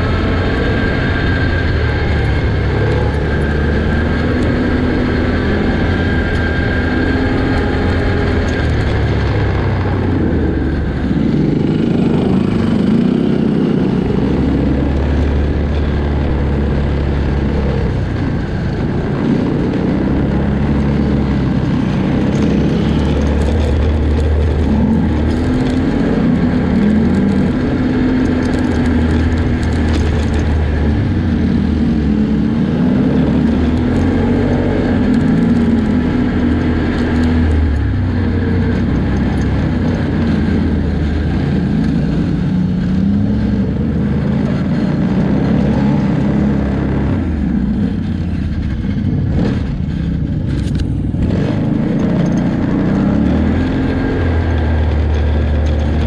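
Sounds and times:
off-road vehicle engine running: 0:00.0 - 0:56.0.

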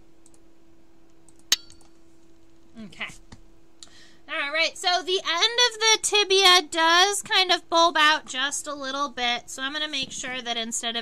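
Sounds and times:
low electrical hum: 0:00.0 - 0:11.0
sharp click with ringing tail: 0:01.5 - 0:01.9.

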